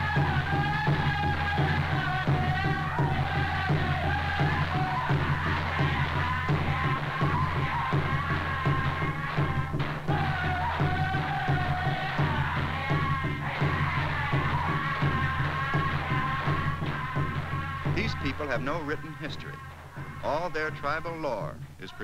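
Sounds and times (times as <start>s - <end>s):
drums beaten in quick rhythm: 0.0s - 22.0s
voices chanting together: 0.0s - 22.0s.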